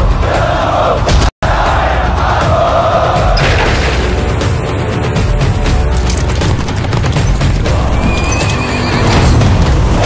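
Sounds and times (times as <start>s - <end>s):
film trailer music: 0.0s - 10.0s.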